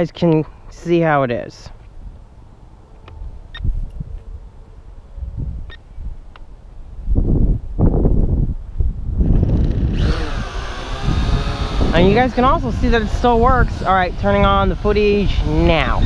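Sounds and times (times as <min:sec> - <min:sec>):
drone motors buzzing whine: 0:09.4 - 0:16.0.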